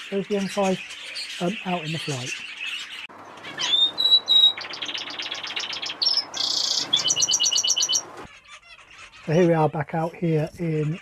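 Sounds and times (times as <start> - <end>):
canaries singing: 0.0 - 11.0.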